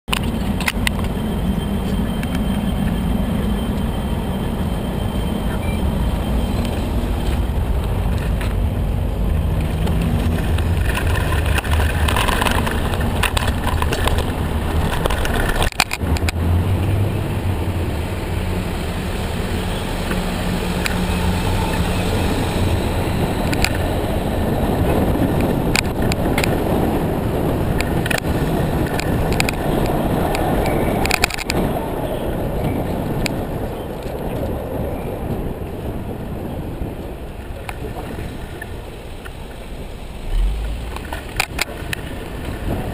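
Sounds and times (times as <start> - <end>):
road rumble: 0.0 - 42.9
bicycle rattling over bumps: 0.1 - 42.9
passing vehicle hum: 0.1 - 42.9
rushing wind: 0.1 - 42.9.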